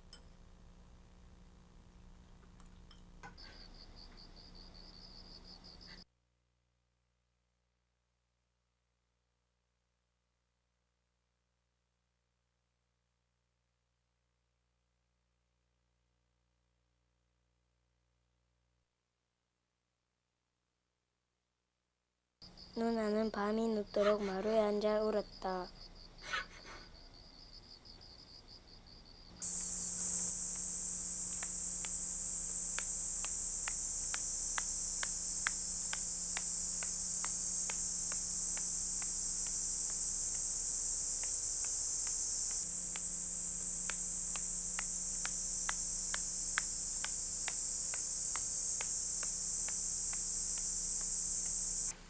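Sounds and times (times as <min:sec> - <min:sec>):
cicadas droning: 0:03.2 - 0:06.0, 0:22.4 - 0:52.0.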